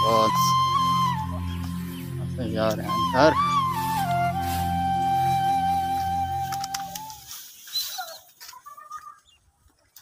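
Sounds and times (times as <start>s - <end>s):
held flute note: 0.0s - 8.0s
short bird calls and chirps: 7.2s - 9.5s.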